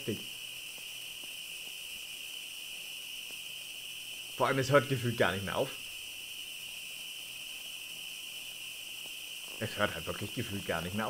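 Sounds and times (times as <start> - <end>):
faint firework pops: 0.0 - 11.0
fireworks hissing: 0.0 - 11.0.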